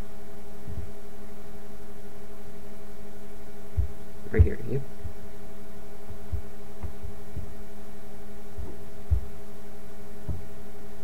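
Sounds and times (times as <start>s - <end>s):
electrical hum: 0.0s - 11.0s
soft low thumps: 0.0s - 11.0s.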